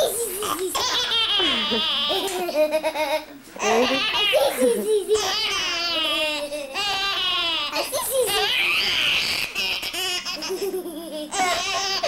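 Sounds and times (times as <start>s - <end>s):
baby laughing: 0.0s - 12.0s.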